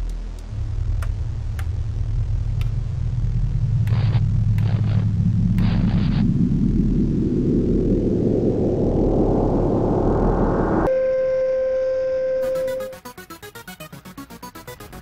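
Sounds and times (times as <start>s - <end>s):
static noise with rising sweep: 0.0s - 10.9s
electronic beep tone: 10.8s - 13.0s
fast electronic music beat: 12.6s - 15.0s.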